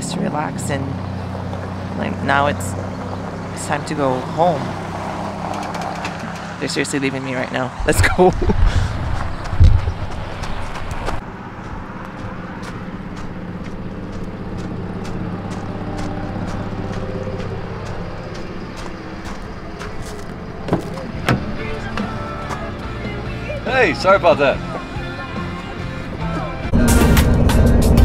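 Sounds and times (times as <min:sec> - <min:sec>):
vehicle driving off rumbling: 0:00.0 - 0:28.0
soft music with light beat: 0:21.4 - 0:28.0.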